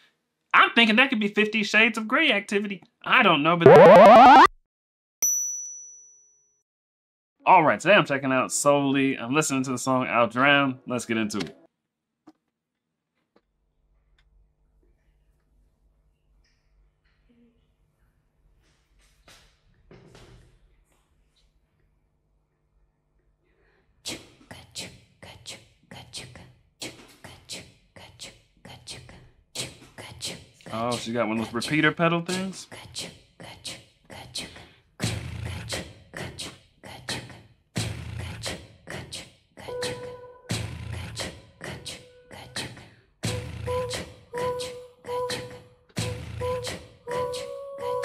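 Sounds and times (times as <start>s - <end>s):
woman whispering breathy rhythm: 24.5s - 30.6s.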